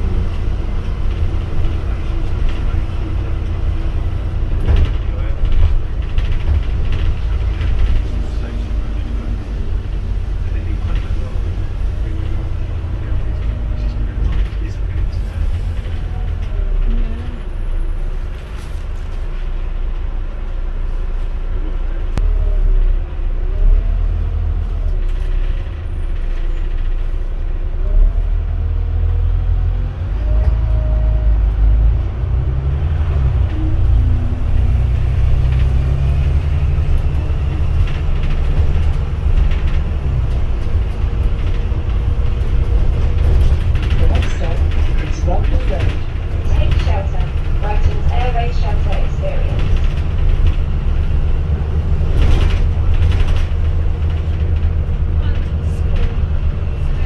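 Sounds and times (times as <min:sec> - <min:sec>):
bus engine droning: 0:00.0 - 0:57.0.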